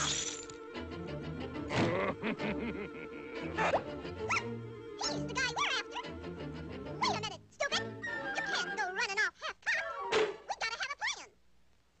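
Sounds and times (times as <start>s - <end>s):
cartoon orchestral music: 0.5s - 9.2s, 9.8s - 10.4s.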